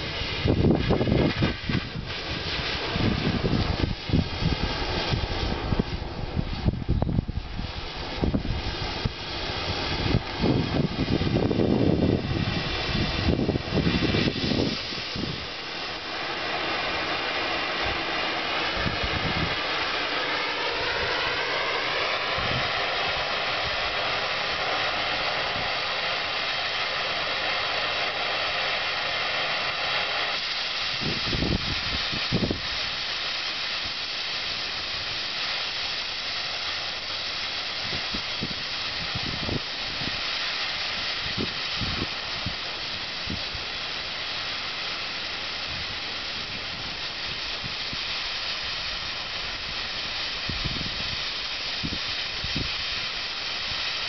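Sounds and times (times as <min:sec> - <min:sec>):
low rumbling gusts: 0:00.0 - 0:53.8
torch flame hissing: 0:00.0 - 0:54.0.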